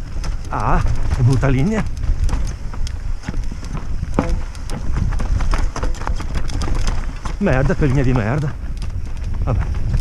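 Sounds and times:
mountain bike clattering over rocks: 0:00.0 - 0:10.0
steady low rumble: 0:00.0 - 0:10.0
rider talking: 0:00.4 - 0:01.9, 0:07.3 - 0:08.6.

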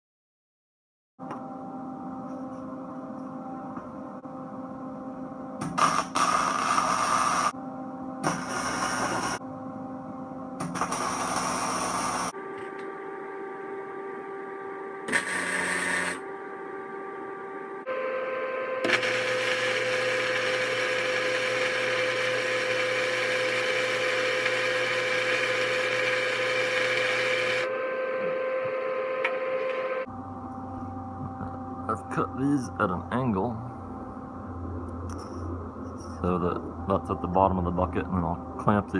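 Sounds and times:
steady electrical hum: 0:01.2 - 0:38.9
arc welding crackling hiss: 0:05.6 - 0:07.5, 0:08.2 - 0:09.4, 0:10.6 - 0:12.3.

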